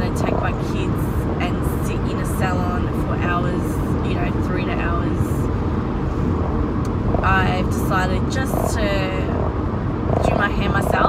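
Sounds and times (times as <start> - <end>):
woman's voice: 0.0 - 5.5, 7.2 - 9.4, 10.2 - 11.0
car road and engine rumble: 0.0 - 11.0.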